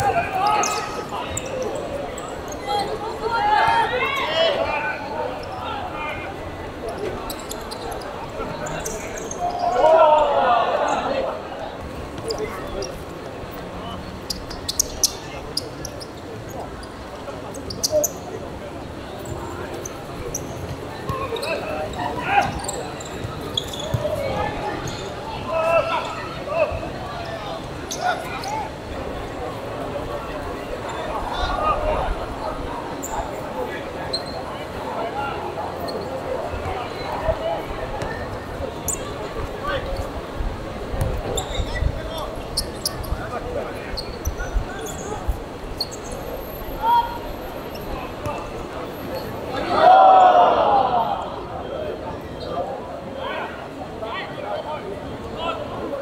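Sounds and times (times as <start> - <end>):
players calling out: 0.0 - 13.0, 19.2 - 40.0
shoes squeaking on court: 0.2 - 2.9, 6.9 - 9.8, 14.2 - 18.3, 19.2 - 25.2, 34.1 - 34.6, 41.0 - 46.3.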